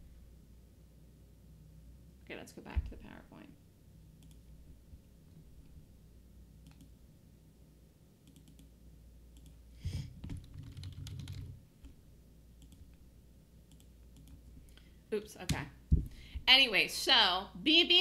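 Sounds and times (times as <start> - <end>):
keyboard and mouse clicks: 4.2 - 4.4, 6.6 - 7.0, 8.2 - 8.7, 9.3 - 9.6, 10.2 - 12.0, 12.6 - 13.0, 13.7 - 14.4.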